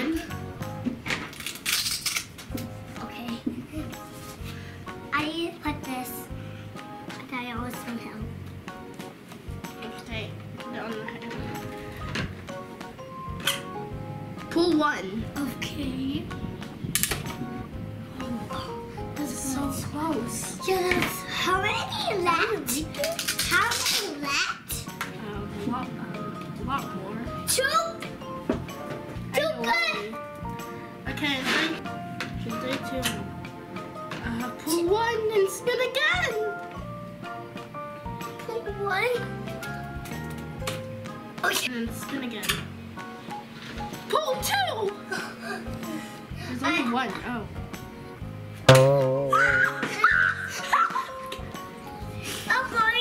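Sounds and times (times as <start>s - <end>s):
background music: 0.0s - 53.0s
plastic game pieces clattering: 1.3s - 2.3s, 23.0s - 24.0s.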